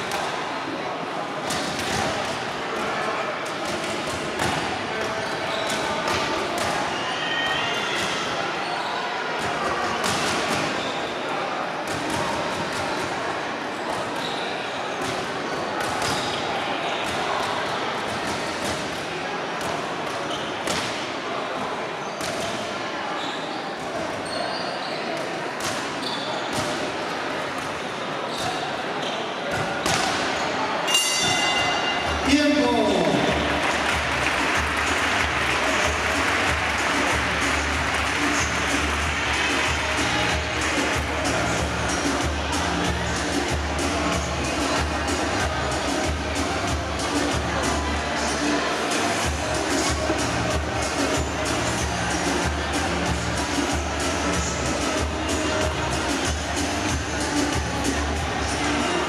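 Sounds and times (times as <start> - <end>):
echoing voices in hall: 0.0 - 59.0
bell-like ring: 30.9 - 32.2.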